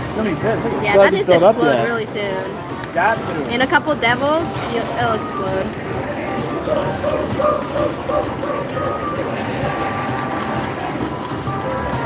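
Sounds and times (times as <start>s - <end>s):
slot machine electronic music: 4.2s - 12.0s.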